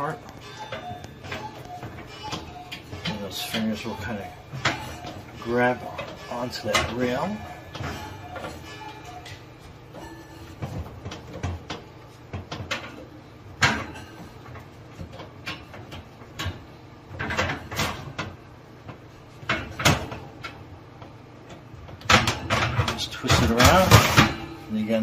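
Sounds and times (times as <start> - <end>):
wire oven rack clinking: 0.0 - 18.4, 22.0 - 25.0.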